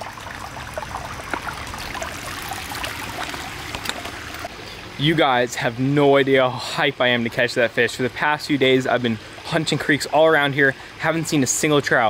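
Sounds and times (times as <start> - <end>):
creek water babbling: 0.0 - 12.0.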